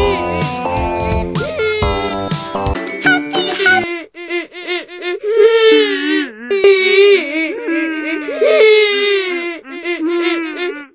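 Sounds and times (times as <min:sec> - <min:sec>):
layered crying wails: 0:03.4 - 0:10.9.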